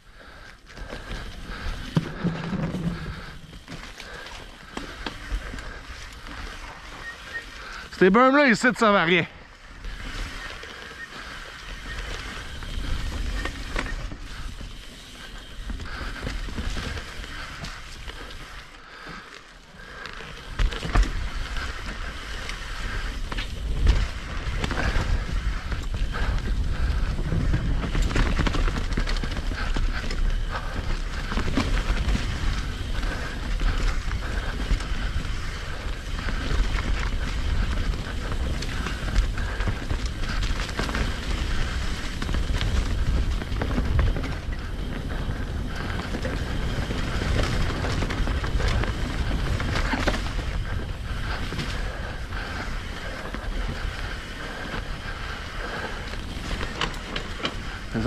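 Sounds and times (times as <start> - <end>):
bike rattling: 0.0 - 58.0
bike tyres rolling over dirt: 0.0 - 58.0.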